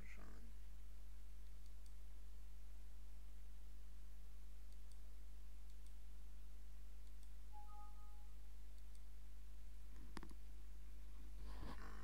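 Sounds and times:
low electrical hum: 0:00.0 - 0:12.0
faint mouse clicks: 0:01.4 - 0:02.0, 0:04.7 - 0:06.0, 0:07.0 - 0:07.4, 0:08.7 - 0:09.1
two-note alert chime: 0:07.6 - 0:08.3.

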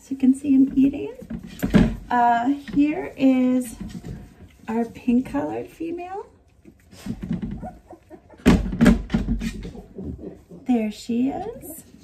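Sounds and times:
shuffling and handling noise: 0:00.0 - 0:08.1.

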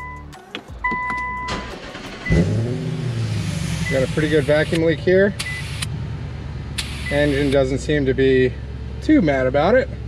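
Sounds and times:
car engine cranking and running: 0:00.0 - 0:10.0.

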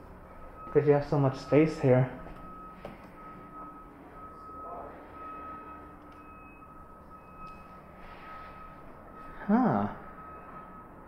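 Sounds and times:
faint high-pitched electronic beeping: 0:00.0 - 0:11.0.

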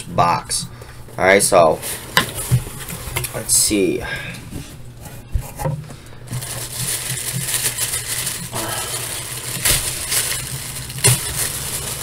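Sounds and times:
packaging rustling and scraping: 0:04.6 - 0:12.0.

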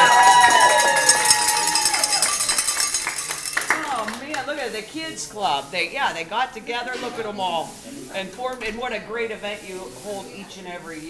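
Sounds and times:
small group applauding: 0:00.0 - 0:04.5.

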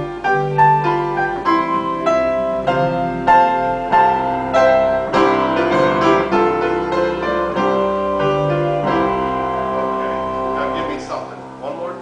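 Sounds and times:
piano chords: 0:00.0 - 0:12.0
pipe organ chords: 0:00.0 - 0:12.0.

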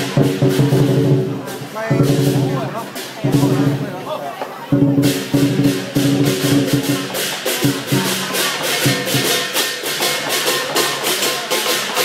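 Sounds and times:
deep drum: 0:00.0 - 0:04.0, 0:04.7 - 0:12.0
rapid cymbal clashes: 0:00.0 - 0:04.1, 0:04.7 - 0:12.0.

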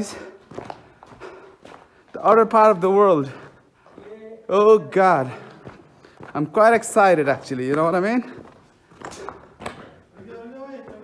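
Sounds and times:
footsteps on rocky floor: 0:00.0 - 0:11.0
man's voice: 0:02.1 - 0:05.6, 0:10.1 - 0:11.0.

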